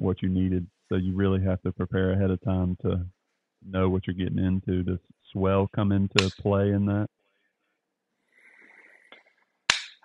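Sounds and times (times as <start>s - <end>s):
faint murmur: 0.0s - 3.1s, 3.7s - 7.1s
sharp click: 6.2s - 6.4s, 9.7s - 10.0s.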